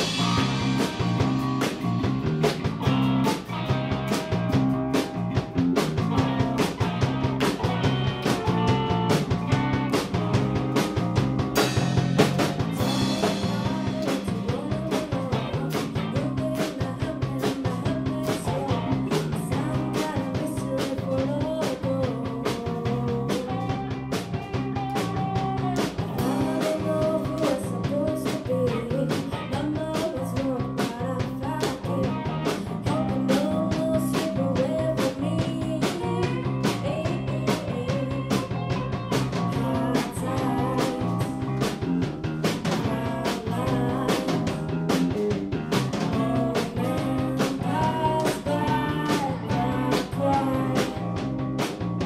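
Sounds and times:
repeating bass line: 0.0s - 29.9s, 31.6s - 52.0s
drum kit beat: 0.0s - 52.0s
electric guitar: 0.0s - 52.0s.

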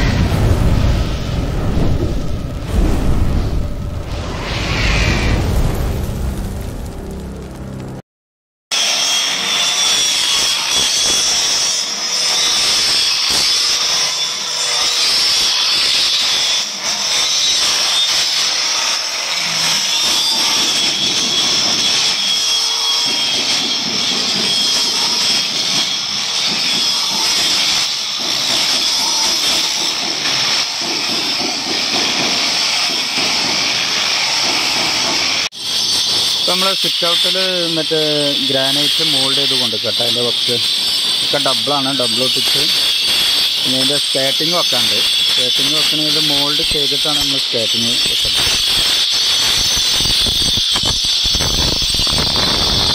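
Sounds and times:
angle grinder cutting stone: 8.7s - 52.9s.

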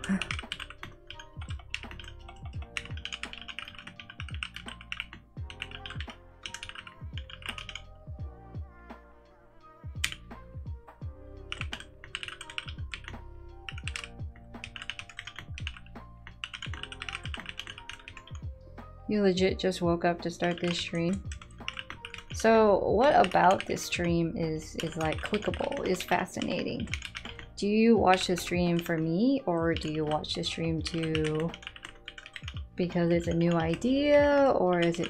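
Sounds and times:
mechanical keyboard typing: 0.0s - 7.9s, 10.0s - 10.2s, 11.5s - 18.4s, 20.2s - 24.1s, 24.7s - 27.5s, 28.1s - 35.0s
background music: 0.0s - 35.0s.

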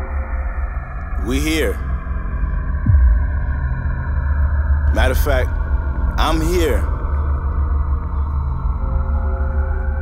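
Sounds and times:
ambient music held tones: 0.0s - 10.0s
deep rumbling drone: 0.0s - 10.0s.

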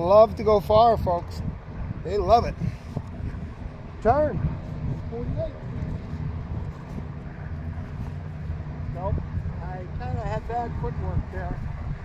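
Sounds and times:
distant mower engine rumbling: 0.0s - 12.0s.

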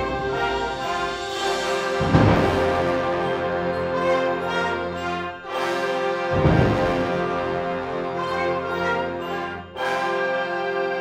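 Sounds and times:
concert wind band playing chords: 0.0s - 11.0s.

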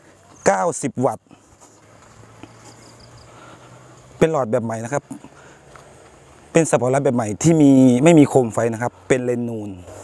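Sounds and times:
insects chirring: 2.0s - 4.2s.

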